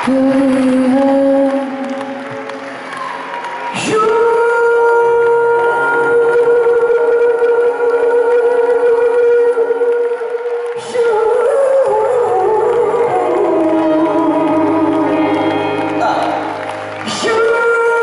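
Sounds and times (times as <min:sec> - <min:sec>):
man singing into microphone: 0:00.0 - 0:02.2, 0:03.7 - 0:18.0
backing music: 0:10.8 - 0:18.0.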